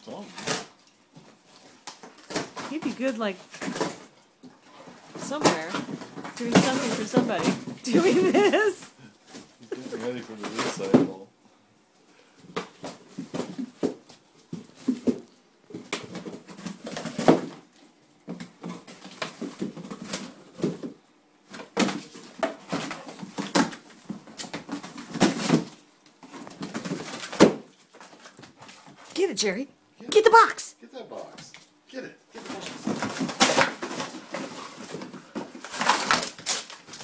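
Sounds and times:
dog tearing and chewing cardboard: 12.6 - 17.7, 18.4 - 29.2, 32.5 - 37.0.

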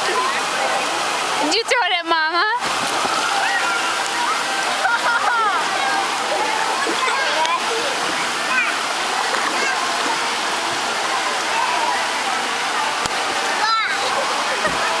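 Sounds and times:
fountain water spraying: 0.0 - 15.0
water splashing: 0.0 - 15.0.

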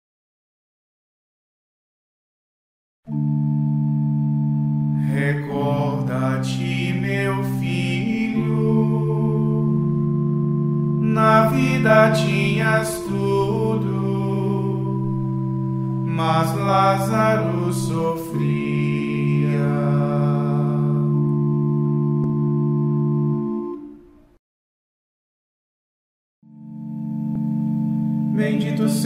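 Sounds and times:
held instrumental chord: 3.1 - 24.4, 26.4 - 29.0
person chanting: 5.0 - 21.9, 28.2 - 29.0.

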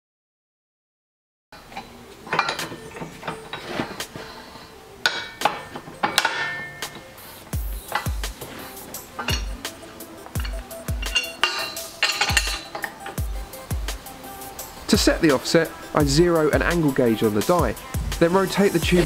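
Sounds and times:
background music with kick drum: 1.6 - 19.0
metal clinks and knocks: 1.7 - 4.2, 5.1 - 7.1, 7.8 - 9.7, 10.3 - 13.4.

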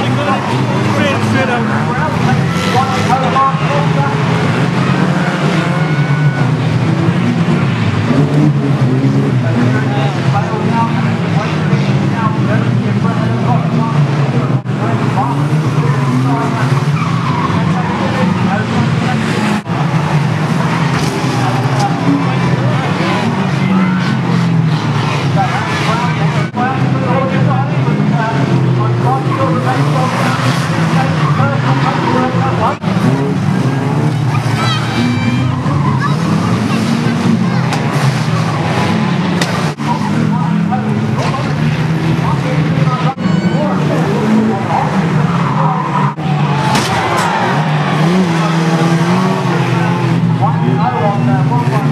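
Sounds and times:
car engines revving hard: 0.0 - 51.9
crowd voices: 0.0 - 51.9
tyres skidding on loose track: 0.0 - 51.9.

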